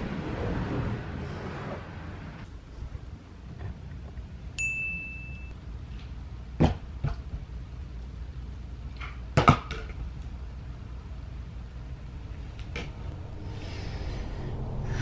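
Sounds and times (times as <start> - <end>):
high ringing ding: 4.6 - 5.5.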